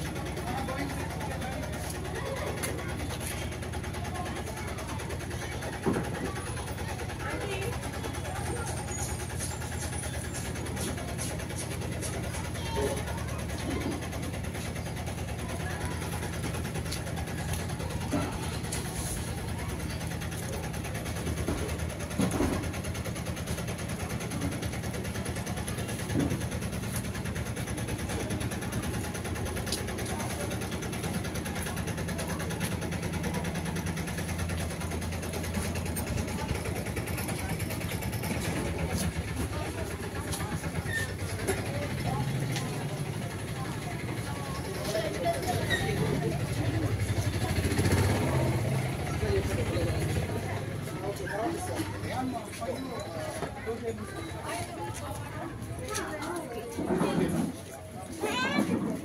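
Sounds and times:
background chatter of voices: 0:00.0 - 0:59.0.

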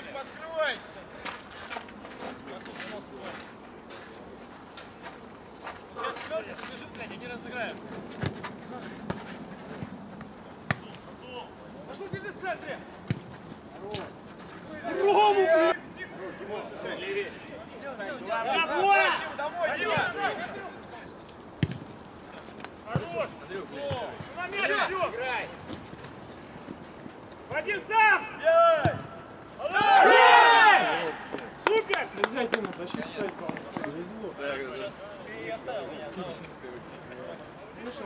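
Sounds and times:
ball kicks: 0:08.1 - 0:11.0, 0:13.0 - 0:14.1, 0:21.6 - 0:21.9, 0:28.8 - 0:29.2
players shouting: 0:14.7 - 0:20.8, 0:22.9 - 0:25.6, 0:27.5 - 0:32.4
shouting and cheering: 0:29.6 - 0:32.1.

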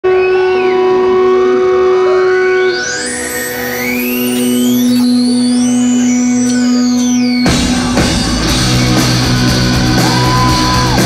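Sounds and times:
amplified instruments droning: 0:00.0 - 0:11.0
high tone bending: 0:00.0 - 0:11.0.

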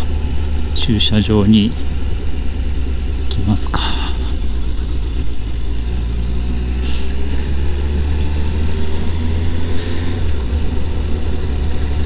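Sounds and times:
motorcycle engine hum: 0:00.0 - 0:12.0
road and wind noise: 0:00.0 - 0:12.0.

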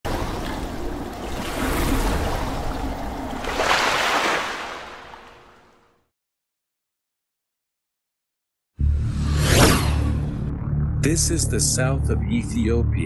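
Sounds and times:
water splashing: 0:00.0 - 0:05.9.

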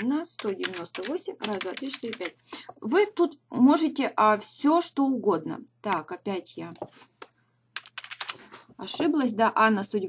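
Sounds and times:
computer keyboard key clicks: 0:00.4 - 0:02.3, 0:07.8 - 0:08.4.

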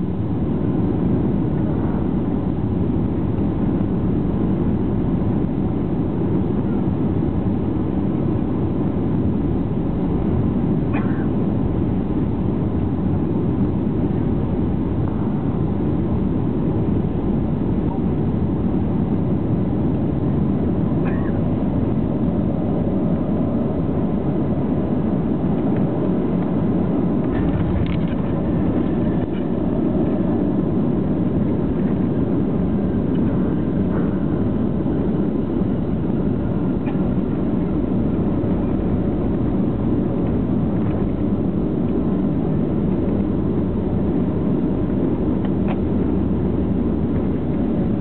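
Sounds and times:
aircraft cabin rumble: 0:00.0 - 0:48.0.

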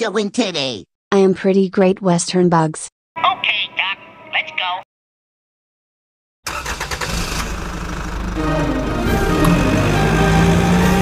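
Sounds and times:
car engine running: 0:06.9 - 0:11.0
background music: 0:08.4 - 0:11.0.

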